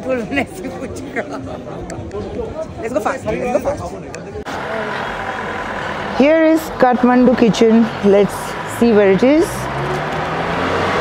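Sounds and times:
voices: 0:00.0 - 0:10.7
vehicle rumble and hiss: 0:04.5 - 0:11.0.

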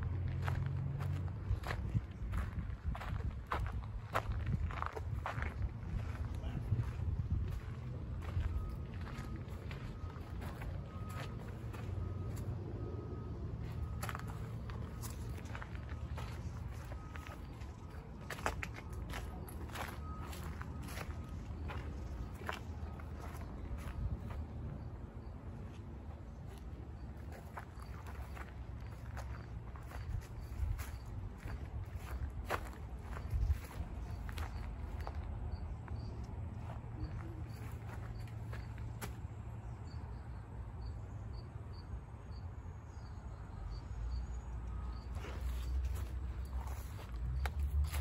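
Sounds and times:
footsteps on grass and dirt: 0:00.2 - 0:12.6, 0:13.6 - 0:24.7, 0:25.7 - 0:39.3, 0:45.1 - 0:48.0.

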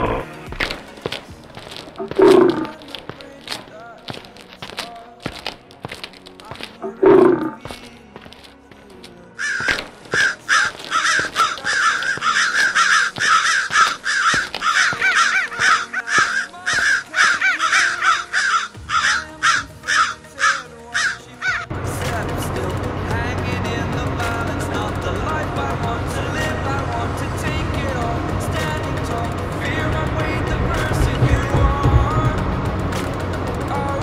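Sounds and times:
faint background music: 0:00.0 - 0:34.0
repeated bird calls: 0:09.4 - 0:21.7.

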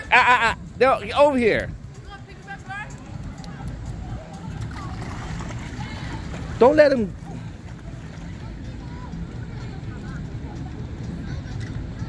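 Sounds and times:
faint voices: 0:00.0 - 0:12.0
wind rumble on microphone: 0:00.0 - 0:12.0.

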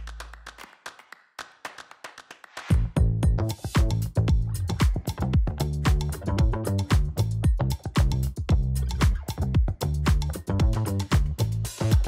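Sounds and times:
music: 0:02.5 - 0:12.0.

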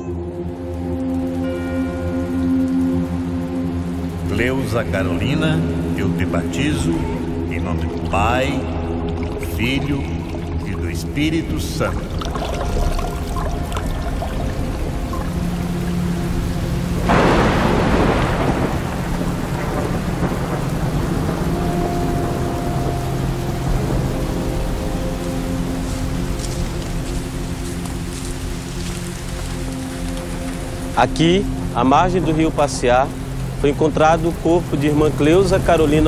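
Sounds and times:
soft sustained musical tones: 0:00.0 - 0:36.0
steady rain: 0:00.0 - 0:36.0
thunder clap rolling: 0:11.4 - 0:25.2.

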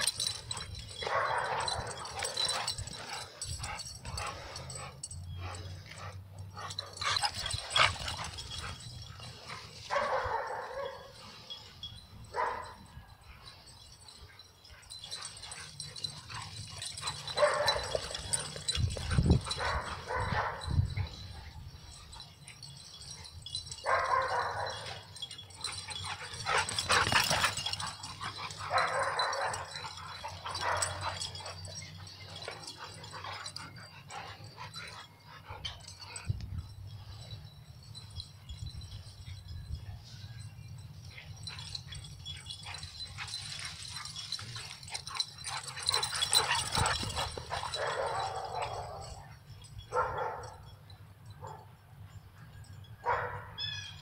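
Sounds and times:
dogs play-fighting vocalizations: 0:00.0 - 0:11.8, 0:13.6 - 0:36.5, 0:41.0 - 0:49.8.

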